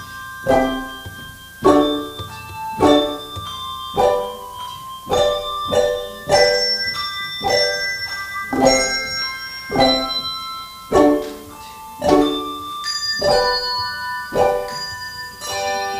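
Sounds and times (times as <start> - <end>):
handbell choir playing chords: 0.0 - 15.9.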